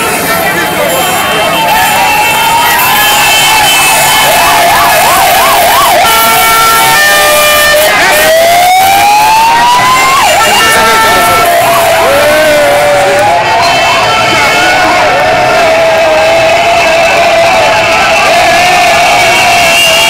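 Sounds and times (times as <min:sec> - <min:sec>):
loud crowd noise: 0:00.0 - 0:20.0
vehicle sirens wailing: 0:00.0 - 0:20.0
vehicles driving past: 0:00.0 - 0:20.0
vehicle horn blasts: 0:19.1 - 0:20.0.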